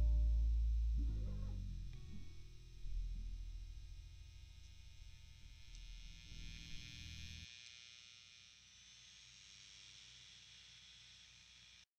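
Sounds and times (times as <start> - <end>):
faint low electrical hum: 0.0 - 7.4.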